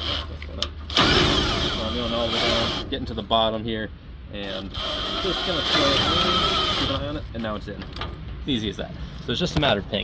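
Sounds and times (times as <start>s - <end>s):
cordless drill whining: 4.5s - 7.1s.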